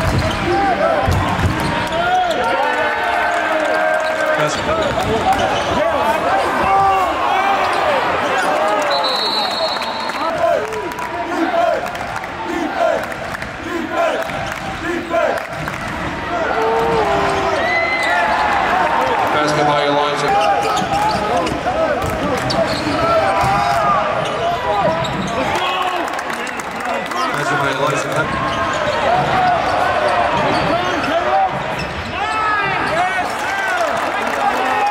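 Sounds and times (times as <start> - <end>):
basketball bouncing: 16.8 - 17.2.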